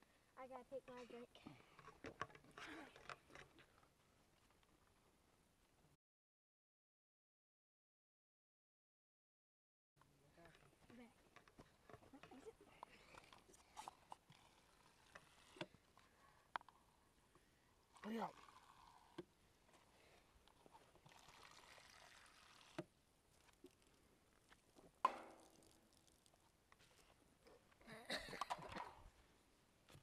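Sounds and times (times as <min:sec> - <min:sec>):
person laughing: 0:27.8 - 0:28.9.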